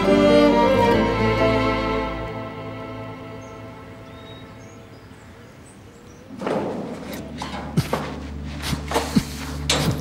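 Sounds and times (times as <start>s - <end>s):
sad string music: 0.0s - 5.2s, 7.4s - 10.0s.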